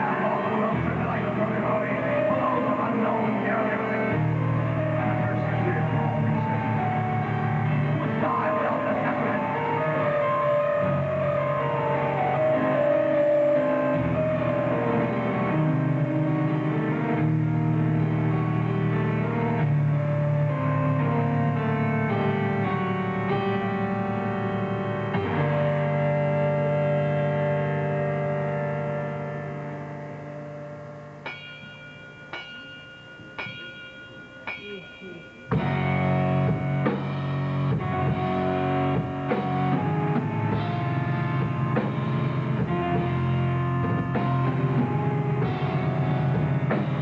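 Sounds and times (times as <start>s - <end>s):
live metal band playing: 0.0s - 28.1s, 34.5s - 47.0s.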